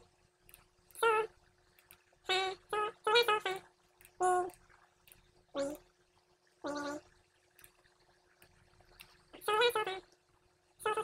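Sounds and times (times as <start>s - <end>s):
faint steady hum: 0.0s - 11.0s
squeaky sped-up speech: 1.0s - 1.3s, 2.3s - 4.5s, 5.6s - 5.8s, 6.7s - 7.0s, 9.4s - 10.1s, 10.8s - 11.0s.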